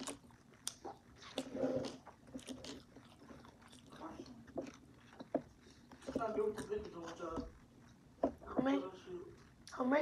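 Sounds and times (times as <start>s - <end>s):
person chewing food: 0.0s - 8.6s.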